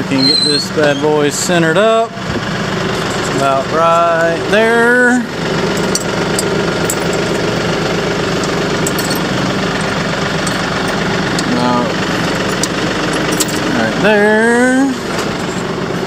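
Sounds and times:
tractor engine idling: 0.0s - 16.0s
metal clicks: 5.7s - 7.7s, 8.3s - 11.5s, 12.2s - 13.8s.

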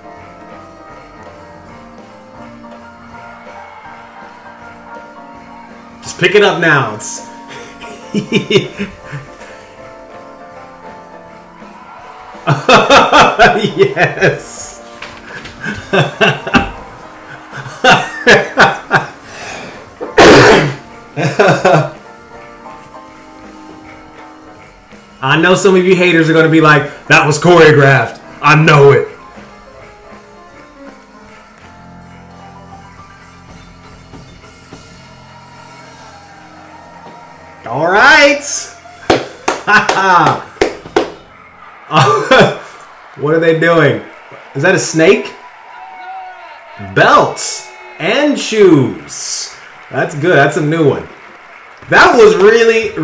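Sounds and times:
swing jazz music: 0.0s - 12.0s, 13.3s - 37.6s
man laughing: 7.6s - 9.4s, 12.5s - 14.6s, 15.4s - 19.2s, 20.2s - 22.0s, 39.6s - 40.5s, 41.9s - 42.6s.

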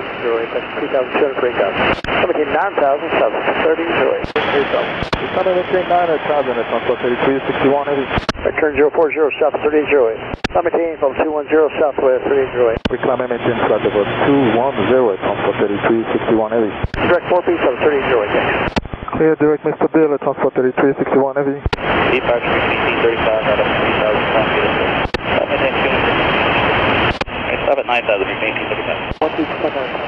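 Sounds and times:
people talking over aviation radio: 0.0s - 30.0s
radio transmission clicks: 1.8s - 2.4s, 4.2s - 5.3s, 8.1s - 8.5s, 10.2s - 10.8s, 12.7s - 13.0s, 16.8s - 17.2s, 18.4s - 19.2s, 21.6s - 21.9s, 24.9s - 25.4s, 27.0s - 27.4s.

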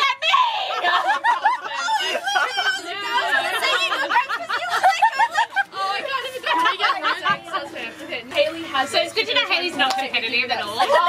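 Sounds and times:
young people chattering: 0.0s - 11.0s
people laughing: 0.3s - 8.1s, 10.6s - 11.0s.

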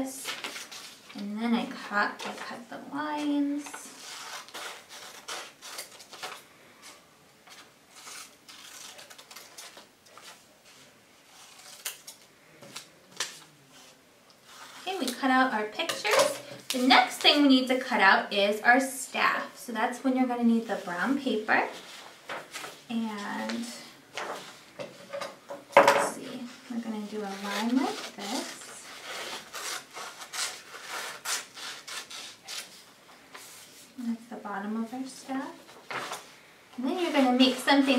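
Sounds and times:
paper rustling: 0.2s - 1.2s, 3.2s - 15.2s, 20.7s - 24.7s, 26.3s - 34.0s, 35.6s - 37.9s.

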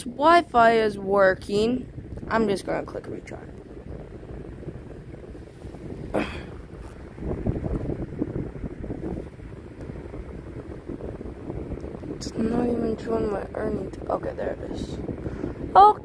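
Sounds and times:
low uneven rumbling: 0.0s - 16.0s.

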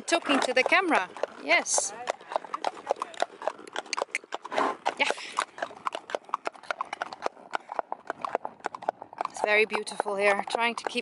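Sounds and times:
horse hooves clip-clopping: 0.0s - 11.0s.

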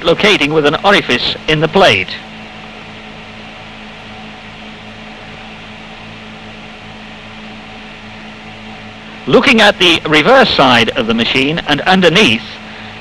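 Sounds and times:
low hum with hiss: 0.0s - 13.0s.

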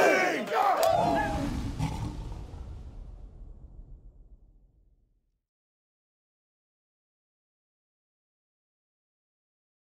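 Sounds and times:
low boom rumble: 0.9s - 5.4s.

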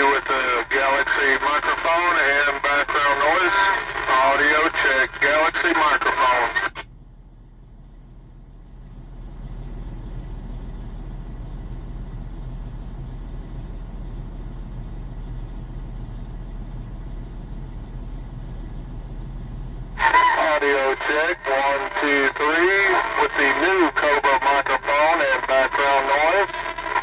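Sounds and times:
man's voice: 0.0s - 6.8s, 20.0s - 27.0s
truck rumble over radio speaker: 0.0s - 27.0s.

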